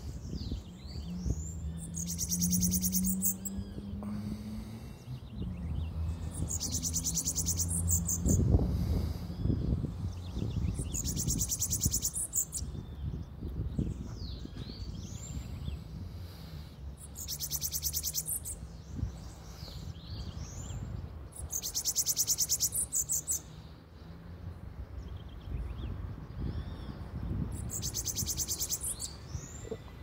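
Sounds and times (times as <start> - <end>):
bird buzzing trills: 0.5 - 9.1.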